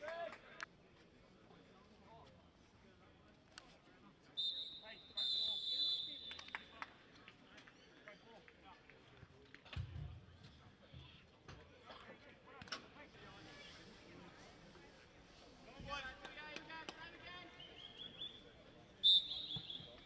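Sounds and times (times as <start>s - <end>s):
faint player voices: 0.0s - 20.0s
referee's whistle blasts: 4.4s - 6.5s, 19.0s - 20.0s.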